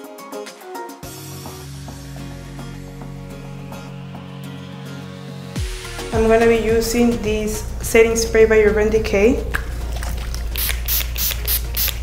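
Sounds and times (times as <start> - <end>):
spray bottle spritzing: 9.9 - 12.0.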